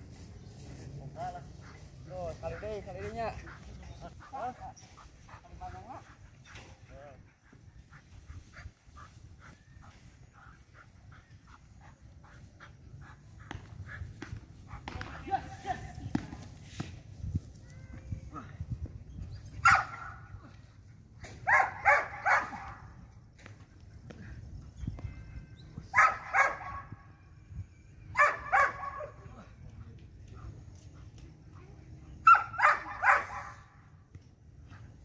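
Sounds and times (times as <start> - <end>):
dog barking: 19.6 - 20.2, 21.4 - 22.8, 26.0 - 26.9, 28.2 - 29.2, 32.2 - 33.6.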